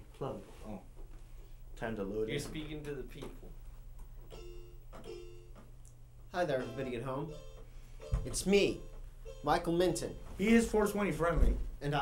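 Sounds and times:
electronic keyboard chords: 6.5 - 10.4.

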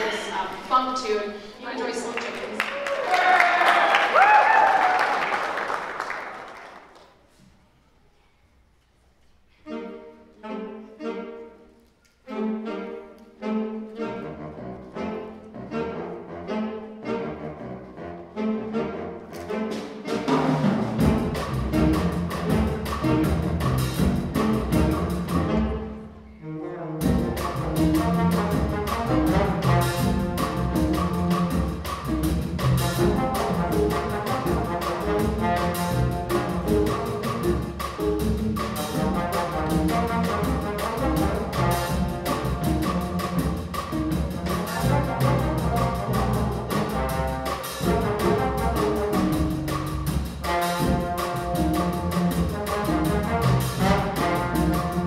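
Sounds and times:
jazz big band playing: 0.0 - 2.6, 9.5 - 55.0
drums: 19.3 - 55.0.

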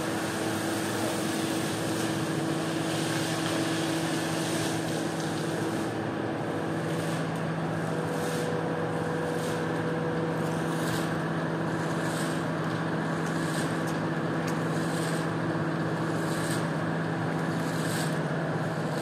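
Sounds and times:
steady motor hum: 0.0 - 19.0.

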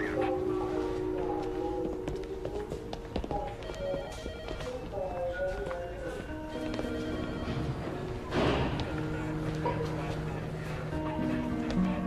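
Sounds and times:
electronic telephone ringing: 3.6 - 4.9, 6.5 - 8.0.

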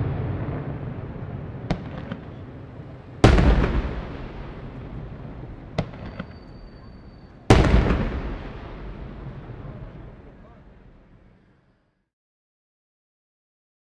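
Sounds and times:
firework cracks: 0.0 - 11.4
firework shell bursts: 3.2 - 9.1.

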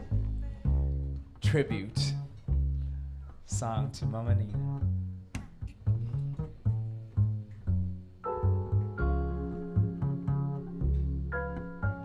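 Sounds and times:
double bass plucking: 0.0 - 12.0.

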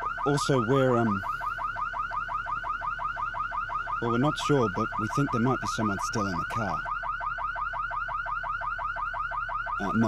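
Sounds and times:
car alarm warbling: 0.0 - 10.0.

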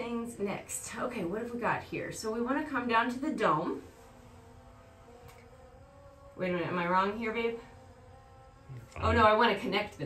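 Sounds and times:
faint hum of held tones: 0.0 - 10.0.

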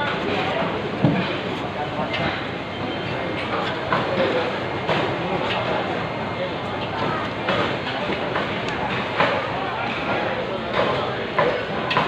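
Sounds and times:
market chatter: 0.0 - 12.0.

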